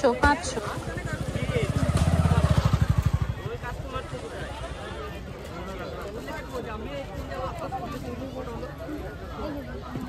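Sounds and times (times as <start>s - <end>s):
motorcycle engine passing: 0.4s - 5.1s.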